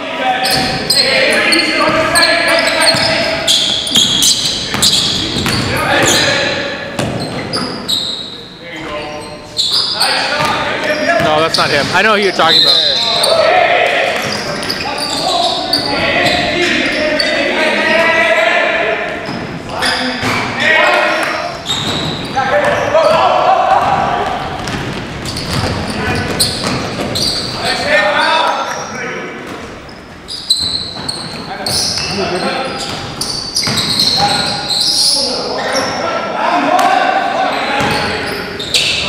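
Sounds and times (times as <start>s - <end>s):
men talking: 0.0s - 7.0s, 8.4s - 24.6s, 25.7s - 29.4s, 31.4s - 33.2s, 34.0s - 39.0s.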